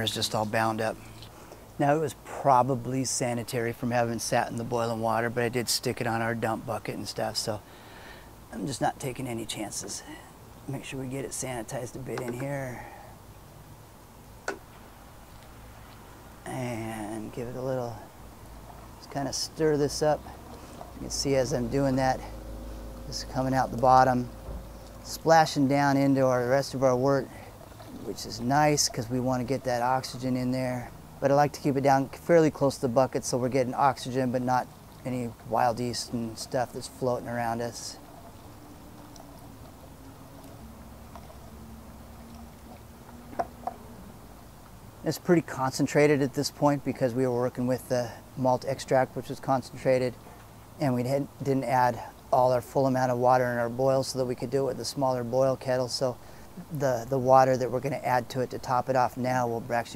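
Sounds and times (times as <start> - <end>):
faint low hum: 0.0 - 59.9
faint steady background noise: 0.0 - 59.9
paddle stirring liquid: 18.5 - 30.2, 34.7 - 44.7.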